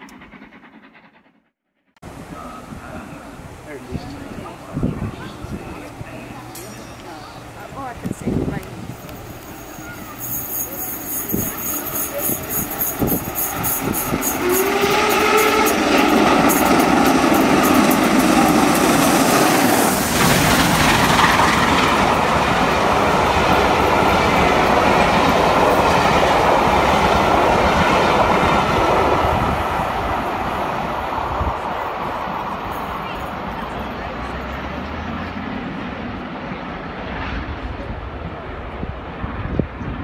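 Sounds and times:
steam train passing: 0.0s - 1.4s, 2.0s - 40.0s.

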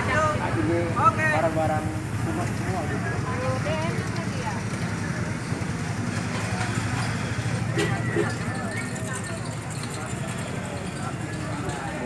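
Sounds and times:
road traffic engine hum: 0.0s - 12.0s
babble of voices: 2.2s - 12.0s.

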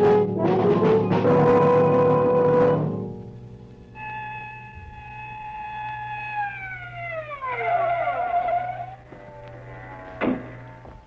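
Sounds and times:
low steady hum: 0.0s - 11.0s
police siren winding down: 3.9s - 10.1s.

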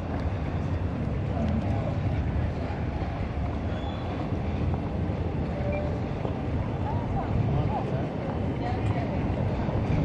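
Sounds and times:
city street low rumble: 0.0s - 10.0s.

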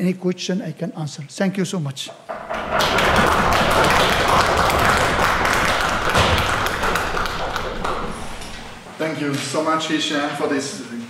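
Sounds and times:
audience applauding: 2.3s - 8.9s.

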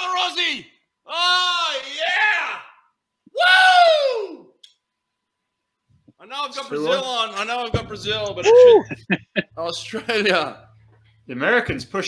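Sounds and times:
person cheering woo: 3.3s - 4.5s, 8.4s - 9.1s.

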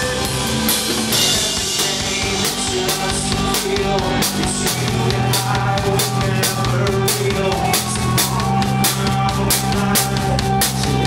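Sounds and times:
drum kit beating: 0.0s - 11.0s
guitar and bass: 0.0s - 11.0s.

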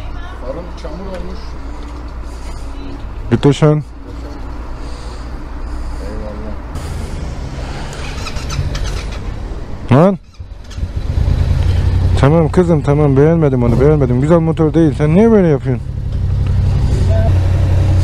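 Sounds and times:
motorcycle engine idling: 7.9s - 9.5s, 10.2s - 18.0s.

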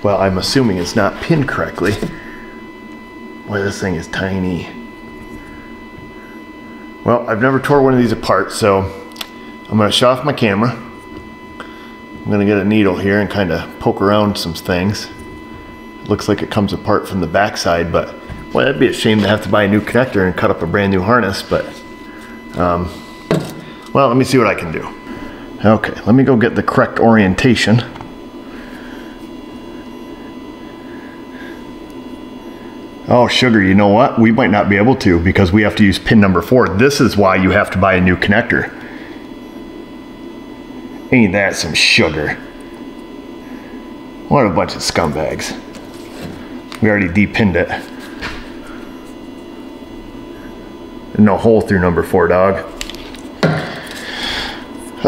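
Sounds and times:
shop background hum: 0.0s - 55.0s.

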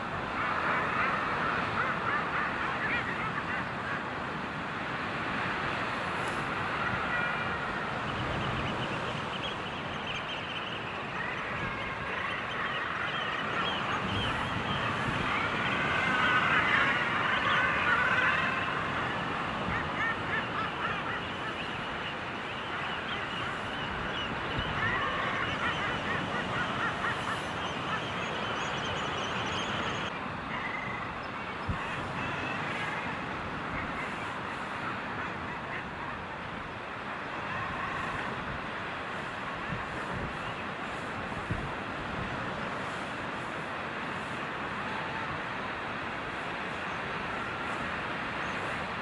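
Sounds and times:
seabird colony calling: 0.0s - 49.0s.

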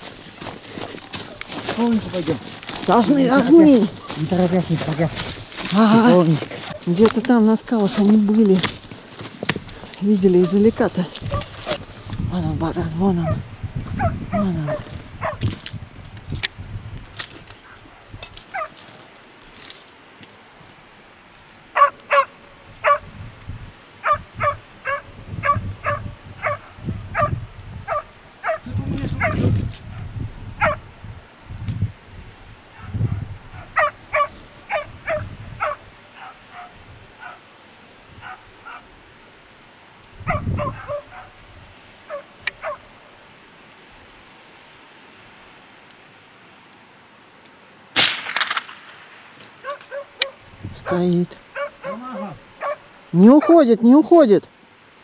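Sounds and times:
dull knocks and rustles: 7.9s - 10.0s
dog barking: 10.4s - 11.8s, 14.0s - 15.4s, 21.7s - 23.1s, 24.0s - 30.0s, 30.6s - 30.8s, 32.8s - 37.4s, 38.2s - 38.9s, 40.2s - 41.4s, 42.1s - 42.9s, 49.6s - 53.6s.

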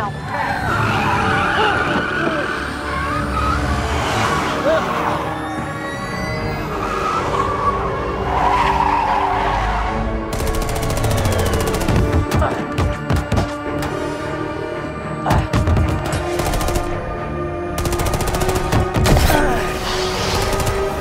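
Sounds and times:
car engines: 0.0s - 11.6s
orchestral electronic film score: 0.0s - 21.0s
tyres skidding: 0.1s - 10.3s.

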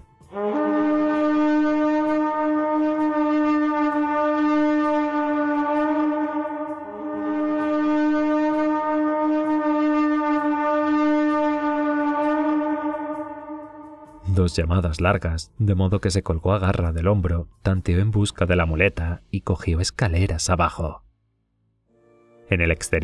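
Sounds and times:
horn blowing long blasts: 0.1s - 14.4s.

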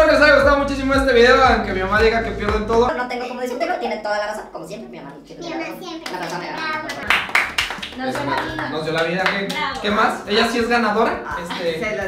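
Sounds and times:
people talking: 0.0s - 12.0s
hand claps: 6.0s - 10.0s.

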